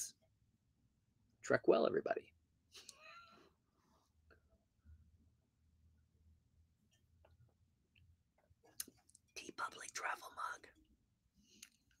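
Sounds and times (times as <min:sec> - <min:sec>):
man whispering: 0:09.4 - 0:10.8.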